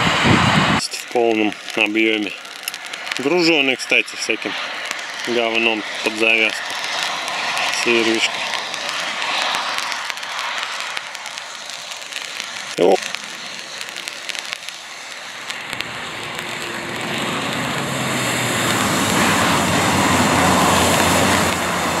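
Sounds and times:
tyres splashing through mud: 15.9s - 22.0s.

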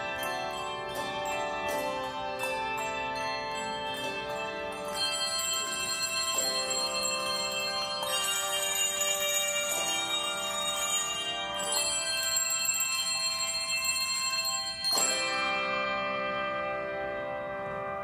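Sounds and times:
handbell choir ringing chords: 0.0s - 18.0s.

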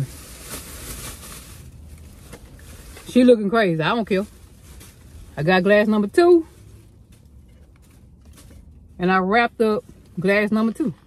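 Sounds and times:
cloth rustling: 0.0s - 8.9s.

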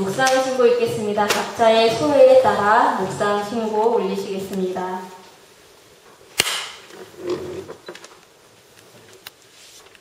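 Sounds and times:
sharp crack: 6.3s - 6.9s.

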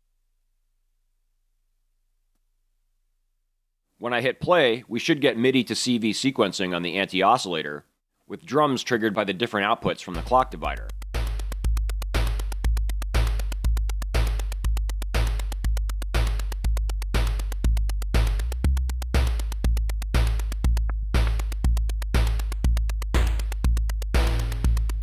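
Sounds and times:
fast clicking percussion: 10.1s - 25.0s
low synth bassline: 10.2s - 25.0s
synthesized kick drum: 10.2s - 25.0s.

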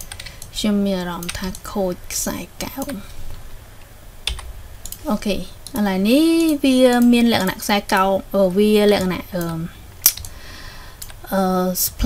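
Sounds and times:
person speaking: 0.5s - 3.2s, 4.9s - 10.2s.

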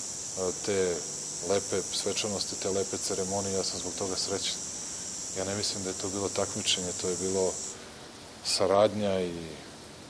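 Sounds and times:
high-pitched hiss: 0.0s - 10.0s
man speaking: 0.4s - 4.6s, 5.4s - 7.8s, 8.4s - 9.7s.

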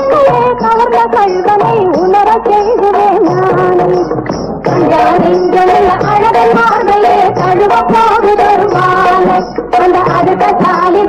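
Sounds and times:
film song with percussion beat: 0.0s - 11.0s.

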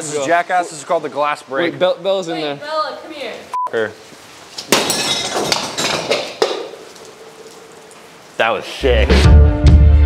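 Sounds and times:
glass shattering: 4.6s - 7.2s
glass pieces clinking: 4.7s - 6.4s.

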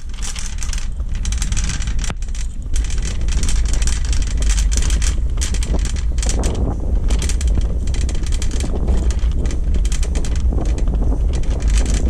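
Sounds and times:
shopping cart wheels rattling: 0.0s - 12.0s
wind buffeting microphone: 0.0s - 12.0s.

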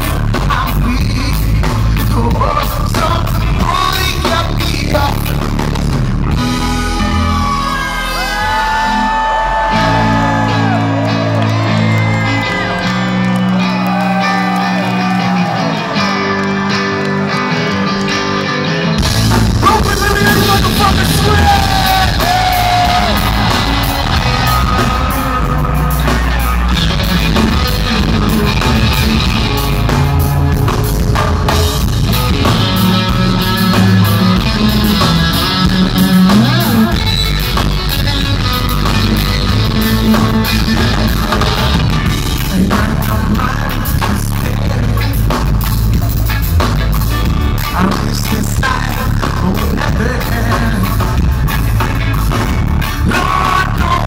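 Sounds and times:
drum kit: 0.0s - 17.2s, 17.8s - 54.0s
bass guitar: 0.0s - 54.0s
electric guitar: 0.0s - 54.0s.

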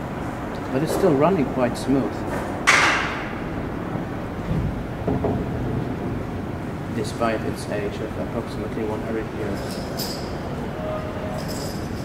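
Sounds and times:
freight elevator running: 0.0s - 12.0s.

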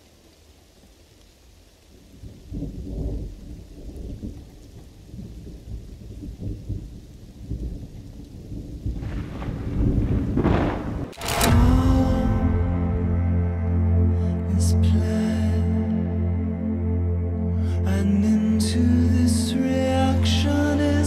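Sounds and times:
faint rain: 0.0s - 21.0s
rolling thunder: 2.2s - 13.4s.

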